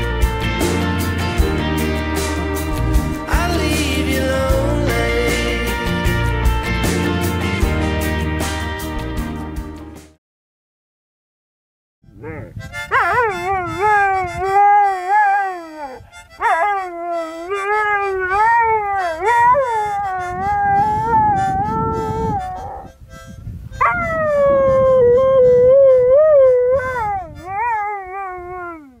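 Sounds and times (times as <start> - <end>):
dog howling: 12.2 - 22.9, 23.8 - 29.0.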